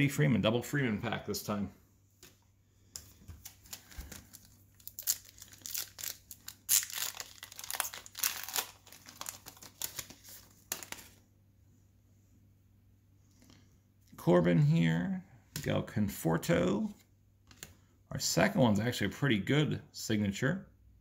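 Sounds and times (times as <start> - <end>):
shiny wrapper crinkling and ripping: 3.4 - 11.2.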